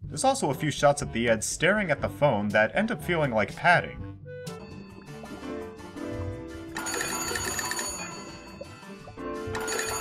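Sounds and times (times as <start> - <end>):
background music: 0.0 - 10.0
old telephone bell ringing: 6.8 - 8.6, 9.5 - 10.0.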